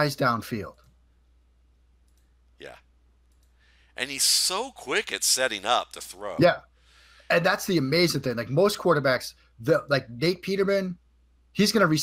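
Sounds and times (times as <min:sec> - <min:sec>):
person saying yeah: 0:04.0 - 0:06.6.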